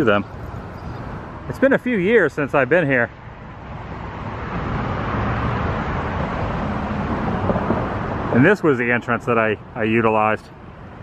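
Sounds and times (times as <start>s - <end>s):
vehicle engine and tyre noise: 0.0s - 11.0s.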